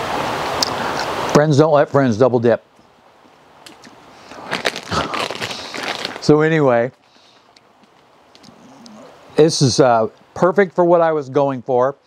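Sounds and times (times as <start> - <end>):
chip bag crinkling: 4.3 - 8.6.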